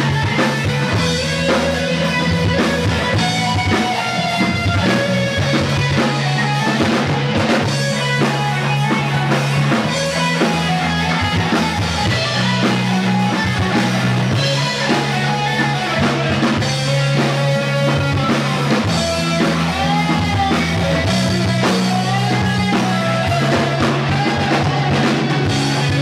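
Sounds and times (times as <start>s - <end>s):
live rock band playing: 0.0s - 26.0s
low bass notes: 0.0s - 26.0s.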